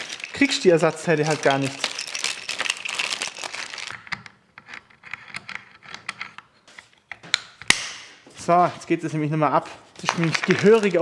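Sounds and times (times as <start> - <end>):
plastic bag crinkling: 0.0 - 4.1, 10.0 - 11.0.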